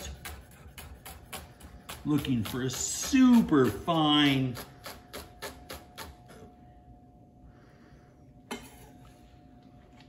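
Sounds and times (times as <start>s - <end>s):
knife chopping on wooden board: 0.0s - 6.2s.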